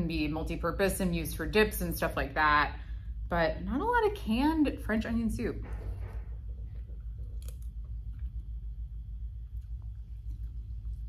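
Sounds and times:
low room hum: 0.0s - 11.0s
sipping and chewing: 6.0s - 11.0s.

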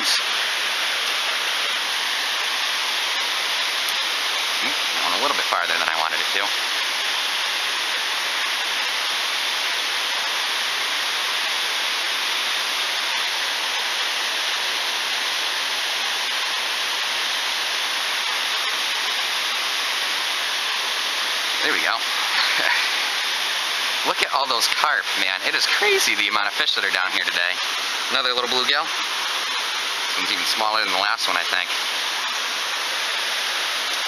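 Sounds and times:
water rushing over spillway: 0.0s - 34.0s.

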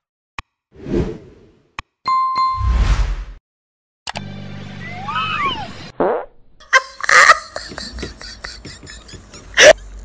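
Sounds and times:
bell-like ding: 2.1s - 2.7s.

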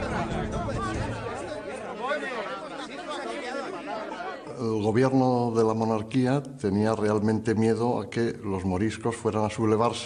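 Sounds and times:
background music: 0.0s - 1.9s
crowd chatter: 0.0s - 5.1s.

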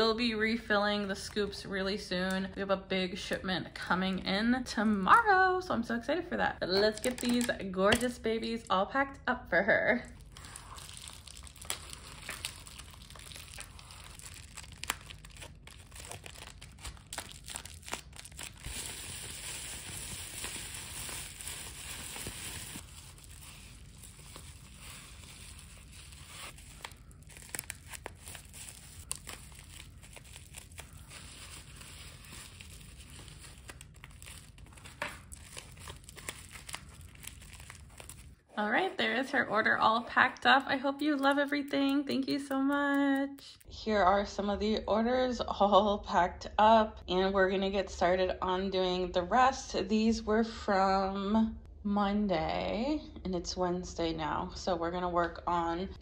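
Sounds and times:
bubble wrap crinkling: 10.1s - 38.5s.

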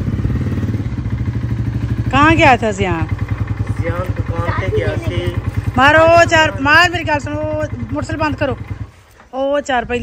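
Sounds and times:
motorcycle engine idling: 0.0s - 10.0s
voices: 2.1s - 10.0s.

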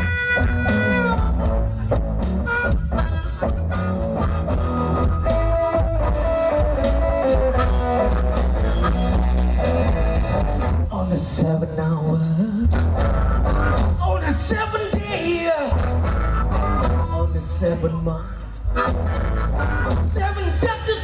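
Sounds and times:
harmonica: 0.0s - 10.9s, 12.6s - 14.4s, 15.2s - 17.5s, 18.3s - 21.0s
blues band playing: 0.0s - 21.0s.

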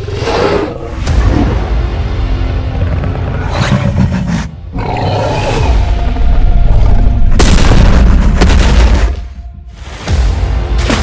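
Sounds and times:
dramatic film music: 0.0s - 11.0s
dinosaur roar: 3.4s - 6.0s.

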